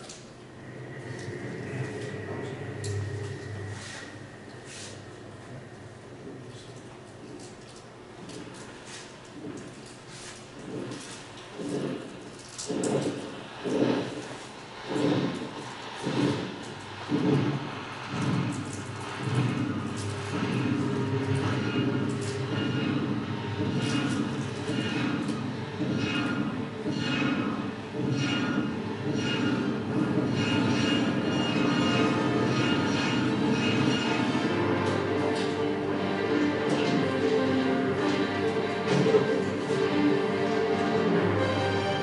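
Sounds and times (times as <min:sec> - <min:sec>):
rhythmic whooshing pulse: 0:00.0 - 0:42.0
steady low hum: 0:00.0 - 0:42.0.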